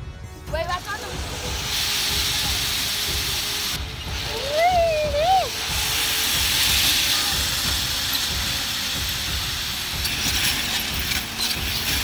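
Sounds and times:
slide rollers rattling and whirring: 0:00.8 - 0:12.0.

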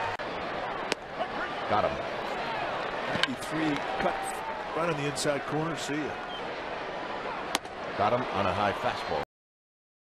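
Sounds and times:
ballpark crowd noise: 0:00.0 - 0:09.2.

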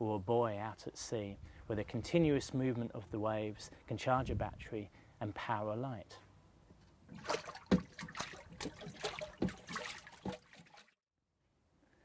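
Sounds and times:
water sloshing and splashing: 0:07.0 - 0:11.0.

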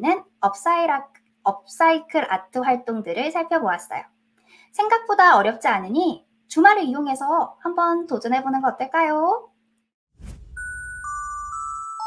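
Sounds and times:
low rumble: 0:10.2 - 0:11.3
whoosh: 0:10.2 - 0:11.4
bell-like chime notes: 0:10.5 - 0:12.0.

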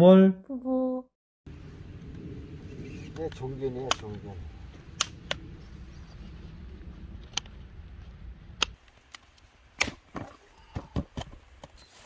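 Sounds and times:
low outdoor background noise: 0:01.5 - 0:12.0.

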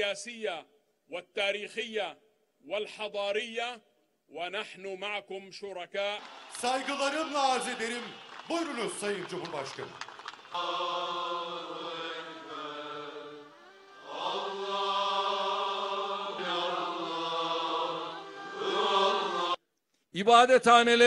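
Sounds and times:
choir chanting religious melody: 0:10.3 - 0:19.6.

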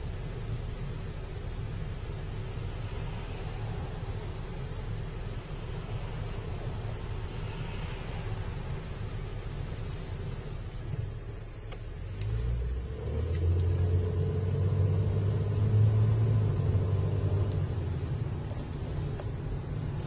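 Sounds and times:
car engine rumble: 0:00.0 - 0:20.0.

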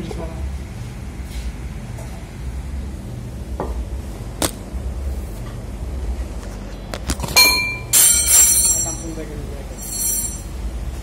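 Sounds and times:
ringing metal strike: 0:07.3 - 0:09.2, 0:09.8 - 0:10.5.

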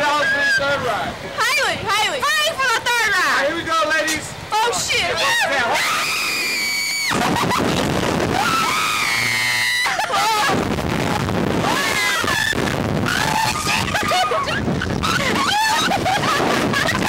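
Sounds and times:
women screaming: 0:00.0 - 0:00.9, 0:05.1 - 0:07.6, 0:08.2 - 0:10.6, 0:11.5 - 0:17.0
wind noise on microphone: 0:06.3 - 0:17.0.

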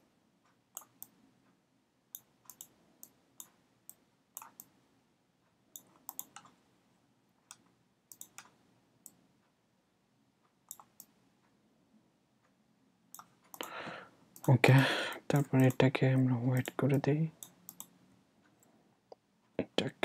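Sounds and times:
computer mouse clicking: 0:00.7 - 0:01.2, 0:02.1 - 0:04.8, 0:05.7 - 0:06.6, 0:07.5 - 0:09.2, 0:10.7 - 0:11.2, 0:13.1 - 0:15.9, 0:17.4 - 0:18.7.

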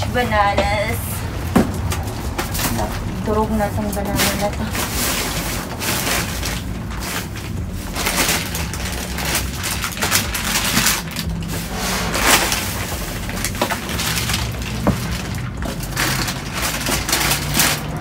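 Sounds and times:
plastic bags and boxes rustling: 0:00.0 - 0:18.0.

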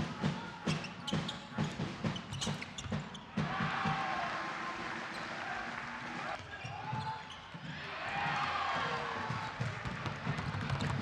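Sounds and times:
voices of players and spectators: 0:00.0 - 0:11.0.

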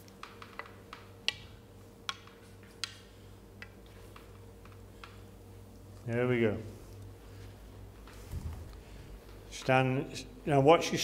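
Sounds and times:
snooker balls clicking: 0:00.0 - 0:05.3
steady low hum: 0:00.0 - 0:11.0.

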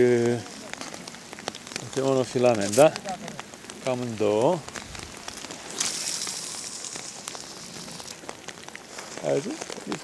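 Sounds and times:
rain pattering on river: 0:00.0 - 0:10.0
strong high hiss: 0:04.0 - 0:08.4.

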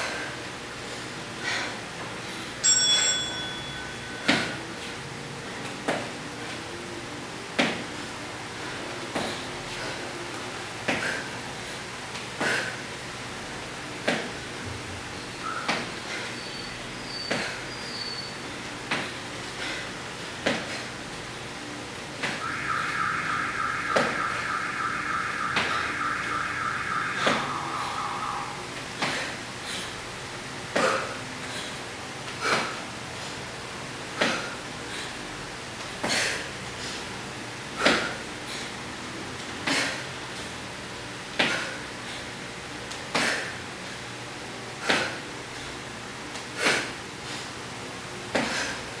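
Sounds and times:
metallic bell ding: 0:02.6 - 0:04.3
high-pitched tone: 0:22.4 - 0:28.7.

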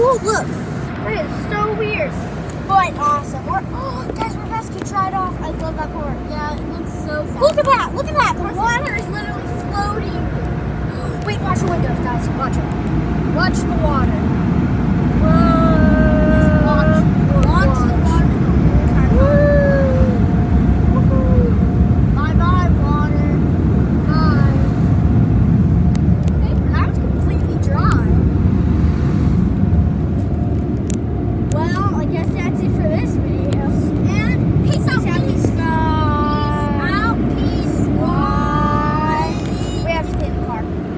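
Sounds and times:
car wash blowers rumbling: 0:00.0 - 0:40.9
thin steady whine: 0:00.0 - 0:40.9.

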